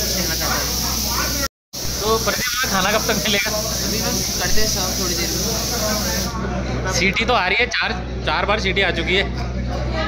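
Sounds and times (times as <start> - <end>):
pressure cooker steam hissing: 0.0 - 6.4
voices: 0.2 - 6.8.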